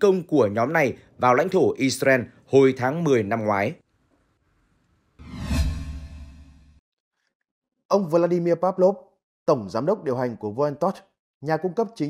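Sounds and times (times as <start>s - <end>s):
whoosh: 5.2s - 6.8s.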